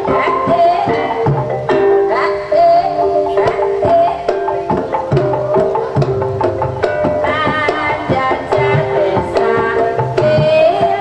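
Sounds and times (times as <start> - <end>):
hand drum strokes: 0.0 - 11.0
ringing metallophone tones: 0.0 - 11.0
wavering high melody: 0.0 - 11.0.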